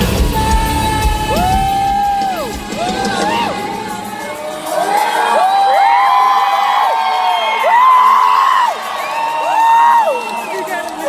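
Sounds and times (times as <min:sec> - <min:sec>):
concert crowd cheering: 0:00.0 - 0:11.0.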